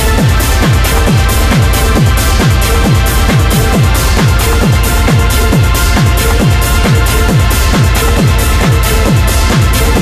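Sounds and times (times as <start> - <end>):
hard techno music: 0.0 - 10.0.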